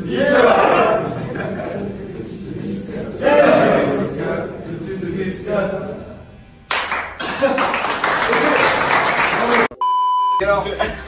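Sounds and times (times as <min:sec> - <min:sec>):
men cheering and shouting: 0:00.0 - 0:01.9, 0:03.2 - 0:04.4
clapping: 0:06.7 - 0:09.8
high test-tone beep: 0:09.8 - 0:10.4.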